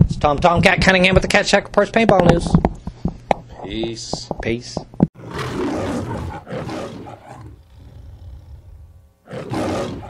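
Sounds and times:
big cat roar: 5.2 - 10.0.

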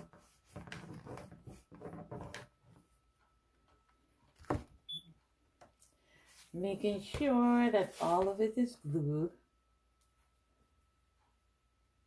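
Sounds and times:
soft handling sounds: 5.8 - 8.7.

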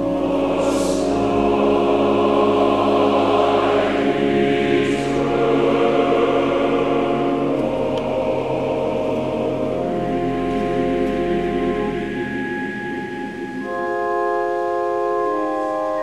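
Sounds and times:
church choir singing: 0.0 - 16.0.

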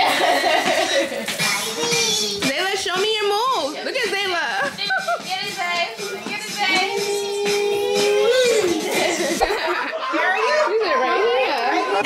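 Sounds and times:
young children babbling and squealing: 1.4 - 2.5, 6.8 - 12.0.

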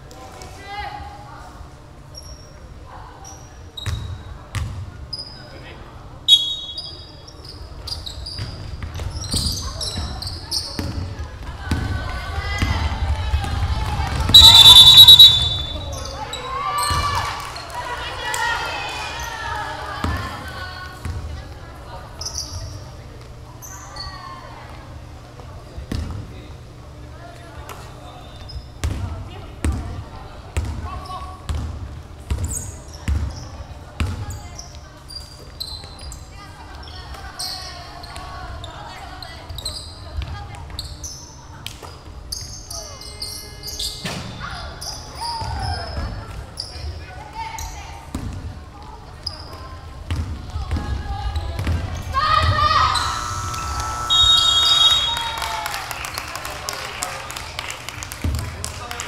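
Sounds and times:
sneakers squeaking: 2.1 - 5.5, 6.3 - 11.1, 14.3 - 17.1, 22.2 - 23.0, 23.6 - 24.3, 27.8 - 29.0, 32.3 - 48.3, 49.0 - 55.3
referee whistle blow: 6.3 - 7.0, 14.3 - 16.1, 52.9 - 55.4
players' voices: 10.1 - 23.6.

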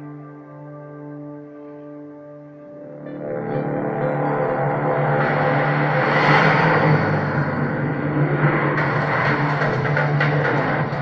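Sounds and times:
steady low drone: 0.0 - 11.0
car engine revving over loudspeakers: 4.3 - 11.0.

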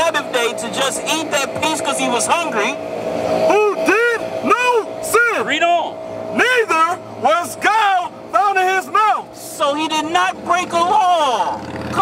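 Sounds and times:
man speaking: 0.0 - 2.8, 3.4 - 12.0
road traffic passing: 0.0 - 12.0.

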